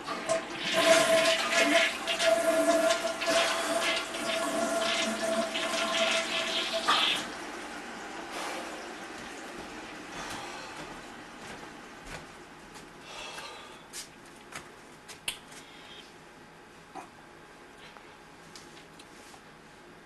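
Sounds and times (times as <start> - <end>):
toilet flushing: 0.0 - 12.0.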